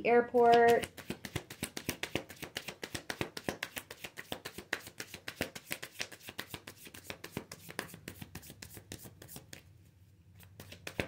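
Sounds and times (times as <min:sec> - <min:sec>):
cards being shuffled: 0:00.4 - 0:09.7, 0:10.4 - 0:11.0.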